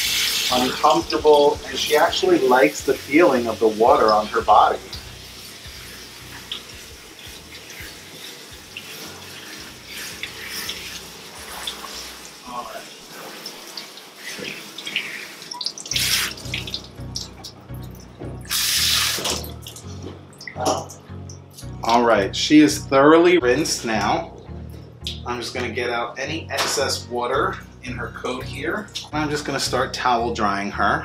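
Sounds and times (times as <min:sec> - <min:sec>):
water spraying from hose nozzle: 0:00.0 - 0:17.4, 0:18.5 - 0:20.0.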